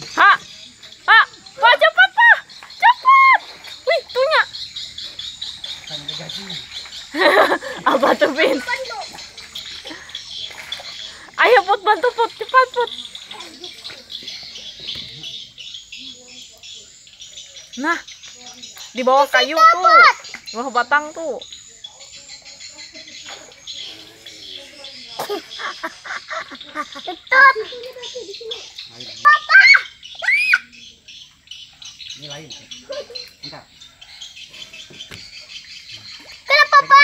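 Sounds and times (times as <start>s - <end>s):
small birds chirping: 0.0s - 37.0s.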